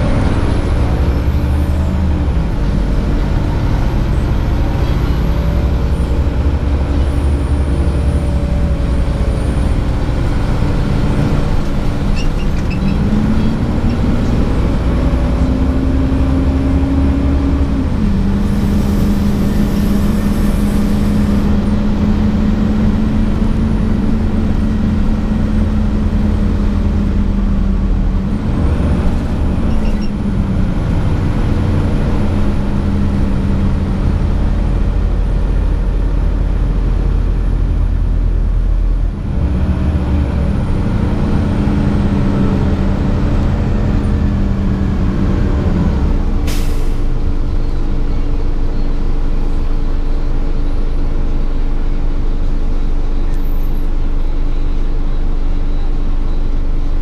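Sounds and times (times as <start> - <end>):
bus engine drone: 0.0 - 57.0.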